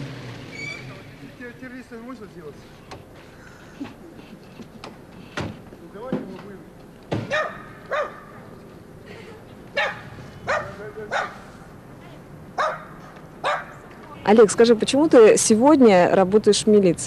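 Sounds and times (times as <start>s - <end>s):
dog barking: 7.3s - 8.4s, 9.8s - 11.4s, 12.6s - 13.8s.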